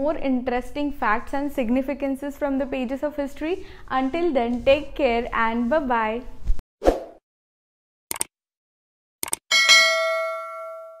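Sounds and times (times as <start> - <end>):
bell ding: 9.5 - 11.0.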